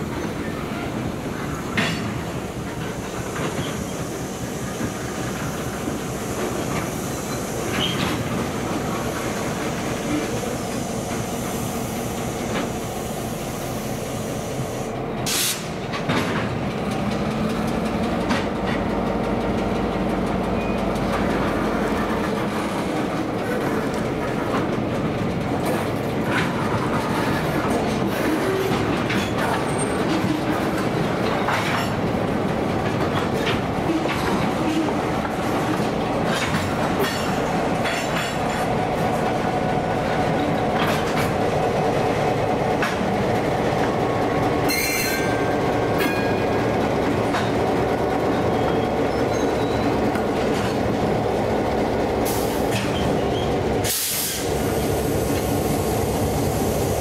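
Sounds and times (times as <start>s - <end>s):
diesel locomotive engine: 0.0s - 57.0s
wheels clacking over rail joints: 15.8s - 55.5s
wheel squeal: 48.6s - 49.9s.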